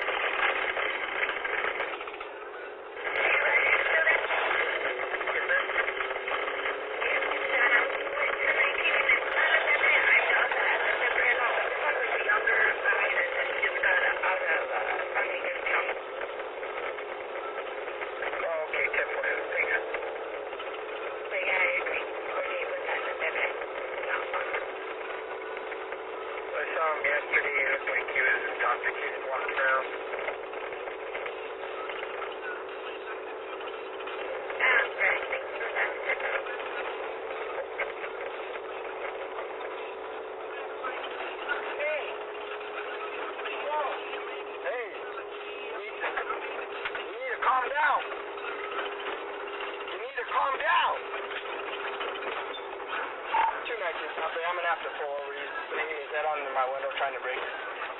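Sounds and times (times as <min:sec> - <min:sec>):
muffled voices: 0:00.0 - 0:57.9
police radio chatter: 0:00.0 - 0:57.9
steady hum: 0:00.0 - 0:57.9.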